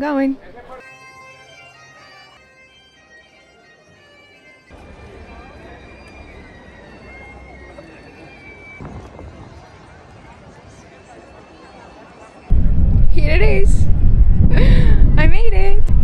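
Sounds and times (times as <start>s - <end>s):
open-air crowd noise: 0.0s - 14.6s
bagpipe melody over drone: 0.8s - 8.8s
low rumble: 12.5s - 16.0s.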